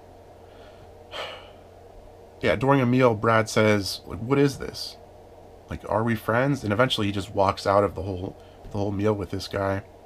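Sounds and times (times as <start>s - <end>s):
low room hum: 0.0s - 10.0s
man's intake of breath: 0.4s - 1.8s.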